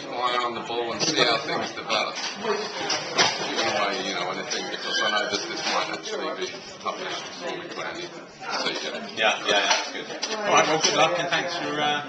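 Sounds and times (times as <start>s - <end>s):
people laughing and talking: 0.0s - 12.0s.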